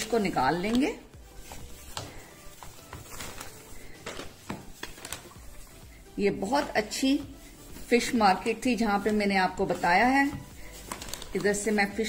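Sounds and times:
faint background music: 0.0s - 12.0s
plastic bag rustling: 0.0s - 12.0s.

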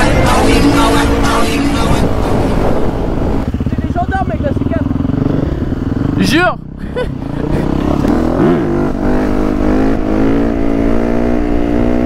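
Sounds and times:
motorcycle engine revving: 0.0s - 12.0s.

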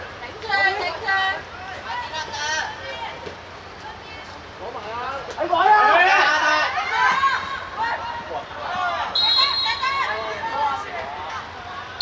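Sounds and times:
people shouting: 5.5s - 12.0s
referee's whistle blast: 9.1s - 10.1s.

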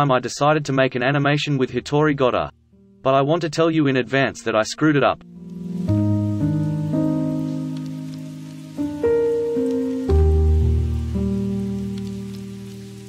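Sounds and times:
slow soft held chords: 2.6s - 3.1s, 5.2s - 13.0s
faint steady patter: 5.4s - 13.0s
deep bass chord: 10.1s - 12.7s.

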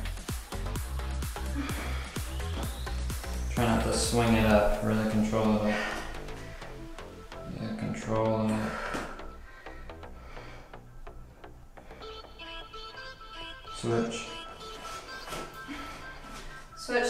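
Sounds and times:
background music with steady beat: 0.0s - 17.0s.

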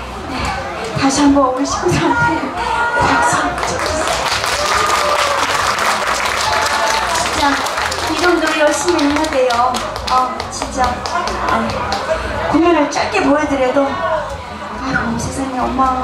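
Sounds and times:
people talking: 0.0s - 4.2s, 7.0s - 16.0s
quick irregular claps: 3.6s - 12.2s.

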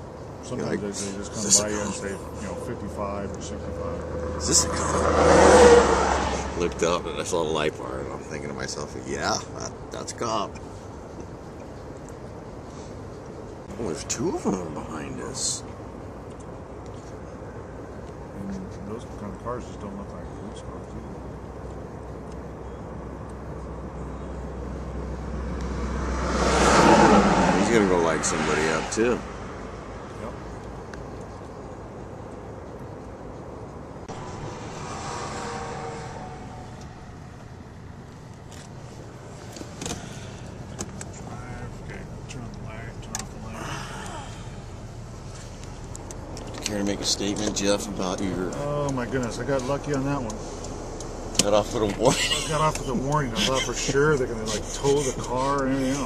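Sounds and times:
car engine rumble from inside cabin: 0.0s - 26.1s, 35.6s - 56.0s
highway traffic passing: 0.0s - 56.0s.

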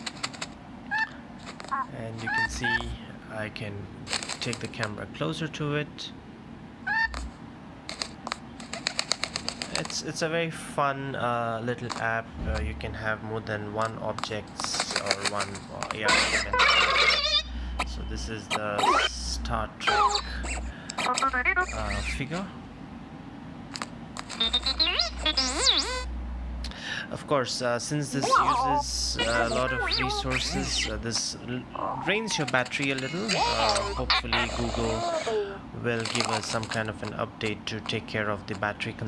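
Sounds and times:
low thump: 12.4s - 13.0s.

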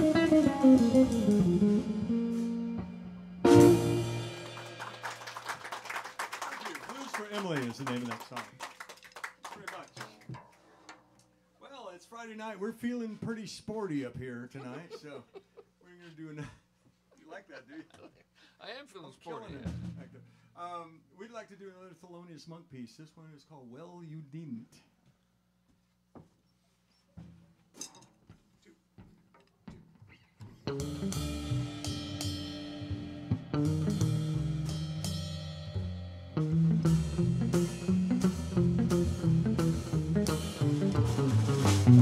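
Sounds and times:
small audience clapping: 4.2s - 10.7s
man speaking into a microphone: 6.8s - 8.6s, 11.7s - 15.3s.

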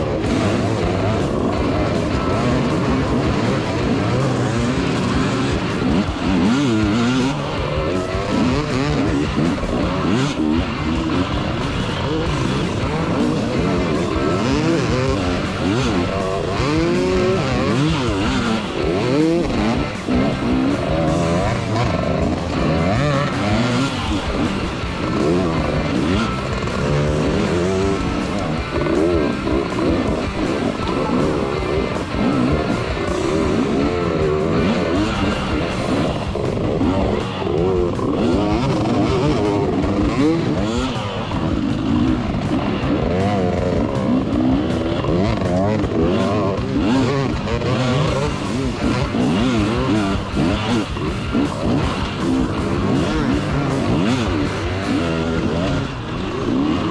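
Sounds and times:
motorcycle engine revving: 0.0s - 56.9s
music: 0.0s - 56.9s.

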